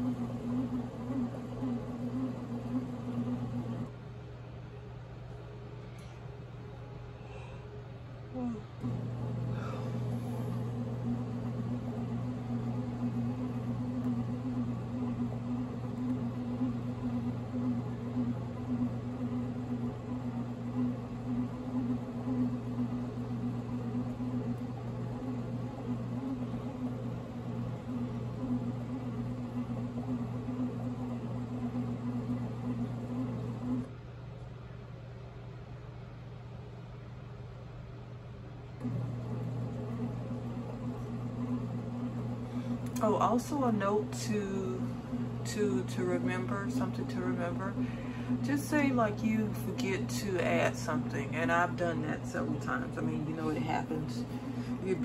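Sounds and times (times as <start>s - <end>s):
bread machine motor humming: 0.0s - 3.9s, 8.3s - 34.0s, 38.8s - 55.0s.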